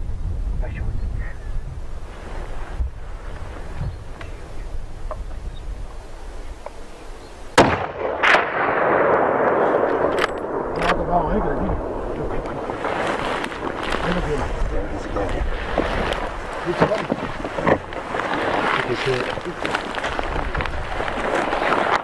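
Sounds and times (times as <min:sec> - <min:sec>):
rifle shot echoing: 0:07.6 - 0:13.0
low voices: 0:10.8 - 0:20.8.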